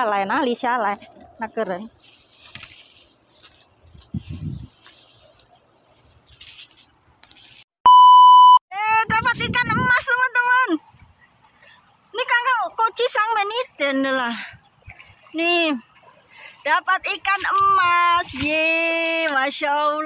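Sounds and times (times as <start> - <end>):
test-tone beep: 7.9 - 8.6.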